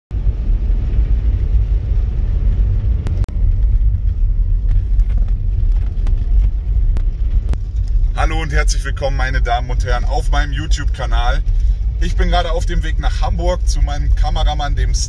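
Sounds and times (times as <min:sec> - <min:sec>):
car cabin road noise: 0:00.1 - 0:15.0.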